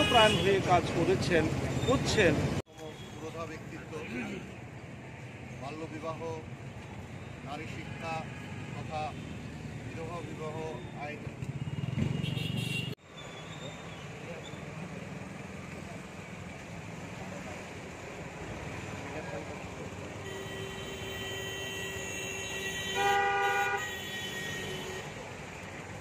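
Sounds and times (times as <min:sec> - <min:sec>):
vehicle horn honking: 0:00.0 - 0:00.6, 0:11.8 - 0:13.0, 0:20.2 - 0:25.1
street traffic: 0:00.0 - 0:26.0.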